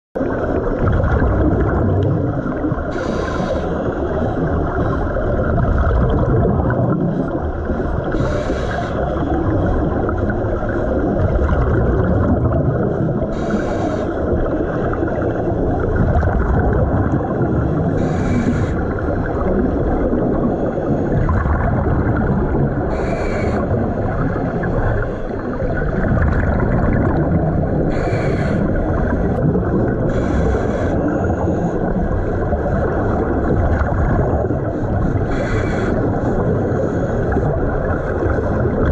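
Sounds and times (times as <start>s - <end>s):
muffled rush of water: 0.2s - 38.9s.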